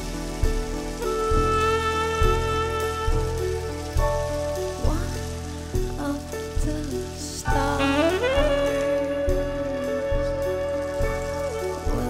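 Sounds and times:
double bass low notes: 0.0s - 12.0s
drum cymbal hiss: 0.0s - 12.0s
sustained piano and keyboard: 0.0s - 12.0s.

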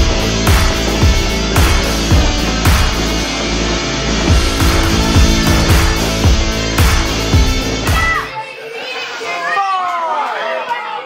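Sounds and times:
rock music: 0.0s - 8.4s
children shouting: 7.8s - 11.0s.

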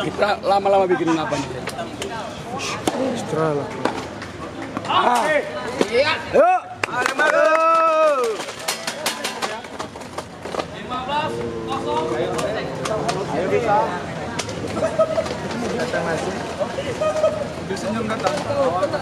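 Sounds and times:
people talking and calling out: 0.0s - 19.0s.

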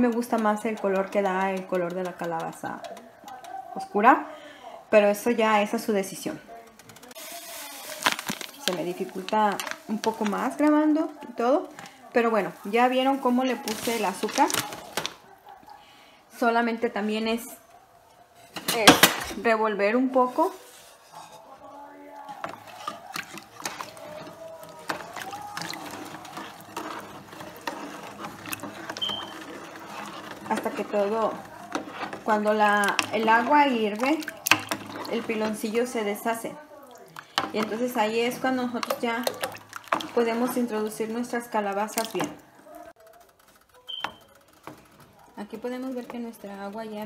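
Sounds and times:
spoon scraping and knocking pot: 0.0s - 3.6s, 22.3s - 36.4s, 37.2s - 42.4s
spoon stirring water in a pot: 0.0s - 4.1s, 5.6s - 15.2s, 18.5s - 47.0s.

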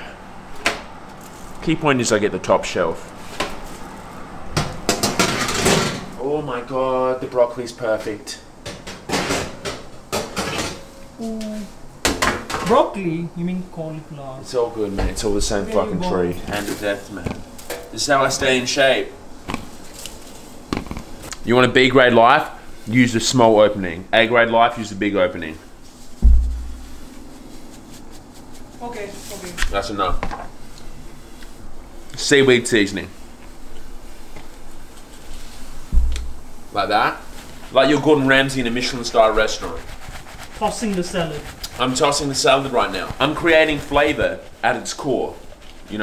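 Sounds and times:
baking tray clattering on oven rack: 4.9s - 6.1s
deep electronic bass boom: 26.2s - 27.0s.

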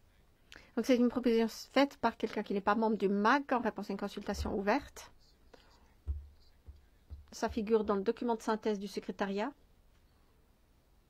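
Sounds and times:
soft low thump: 4.3s - 4.9s, 6.1s - 8.1s.

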